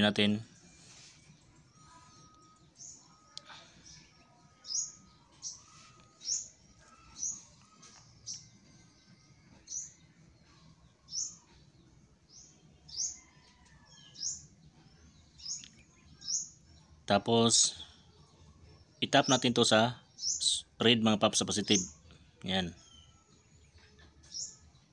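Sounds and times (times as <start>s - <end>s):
bird chirping: 0.0s - 24.9s.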